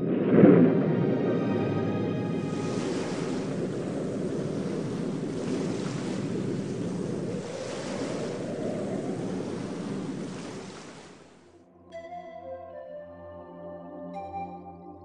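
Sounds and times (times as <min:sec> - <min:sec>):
waves surging: 0:00.0 - 0:11.5
wind: 0:00.0 - 0:11.7.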